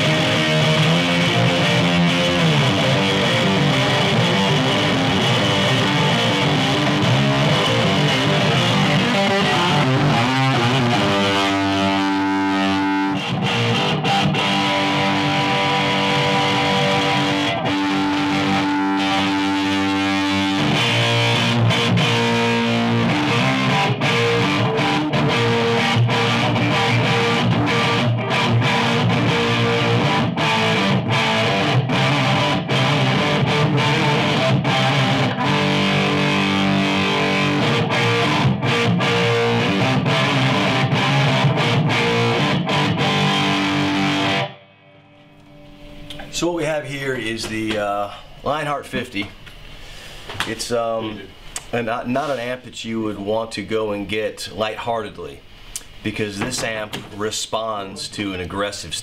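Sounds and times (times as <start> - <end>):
distorted electric guitar: 0.0 - 52.7, 55.3 - 59.0.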